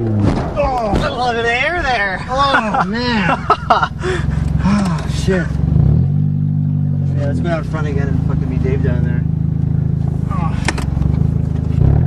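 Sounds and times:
car engine under load: 0.0s - 12.0s.

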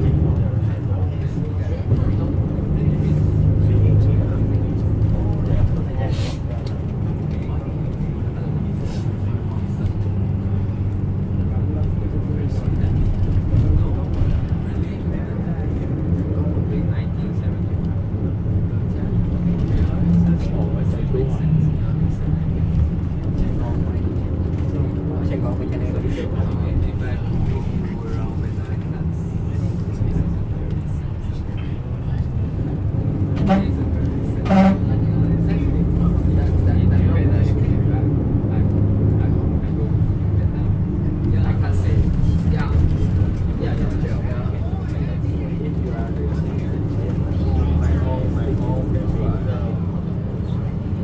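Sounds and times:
bus engine and road rumble: 0.0s - 51.0s.

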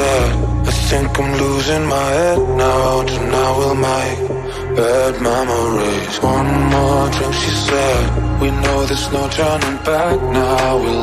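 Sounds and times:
dance-pop house music: 0.0s - 11.0s
sung vocal melody: 0.0s - 11.0s.

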